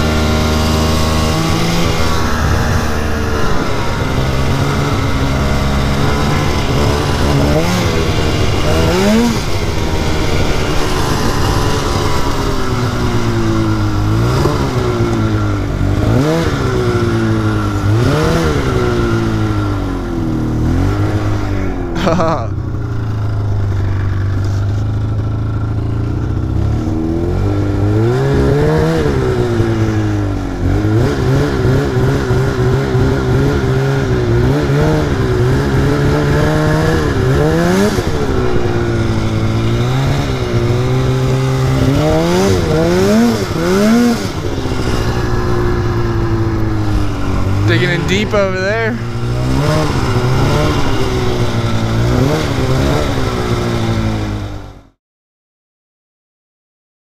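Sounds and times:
snowmobile engine revving: 0:00.0 - 0:54.8.

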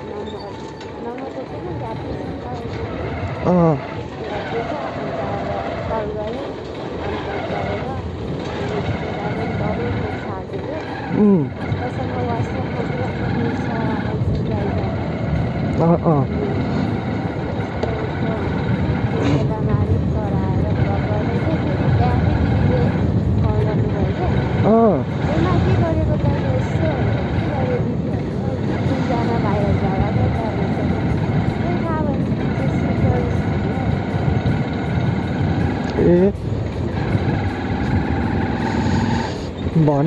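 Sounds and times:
motorcycle engine riding: 0:00.0 - 0:40.0
road noise: 0:00.0 - 0:40.0
wind rushing over microphone: 0:01.3 - 0:40.0.

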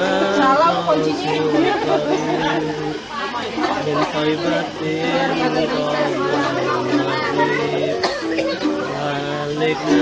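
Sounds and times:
people talking: 0:00.0 - 0:10.0
plucked-string music: 0:00.0 - 0:10.0.

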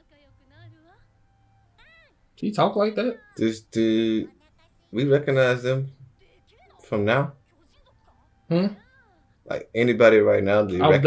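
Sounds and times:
high-pitched cartoon voices: 0:03.0 - 0:05.0.

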